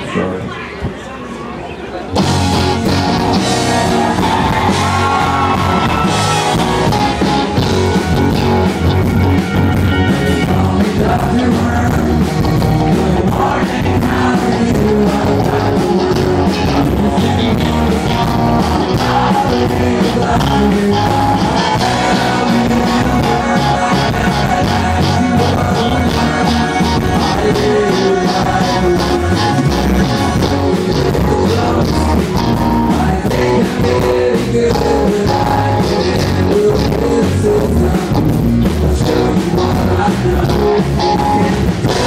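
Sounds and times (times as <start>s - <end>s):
live rock band playing: 2.0s - 42.0s
distorted bass: 2.2s - 42.0s
accordion: 14.4s - 42.0s.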